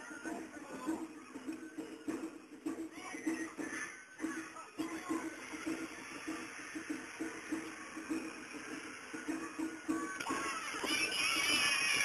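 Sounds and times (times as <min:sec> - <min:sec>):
distant festival procession music: 0:00.0 - 0:12.0.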